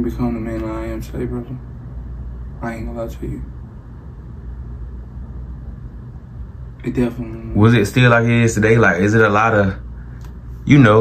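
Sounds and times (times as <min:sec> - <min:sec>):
faint low hum: 0:00.0 - 0:11.0
low room rumble: 0:00.0 - 0:11.0.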